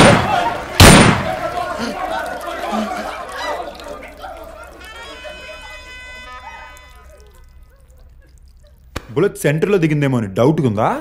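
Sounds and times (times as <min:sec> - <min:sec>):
hubbub of voices: 0:00.0 - 0:08.6.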